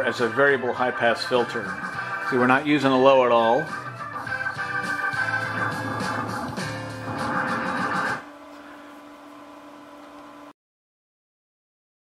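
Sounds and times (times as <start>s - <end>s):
music through pa speaker: 0.0s - 8.2s.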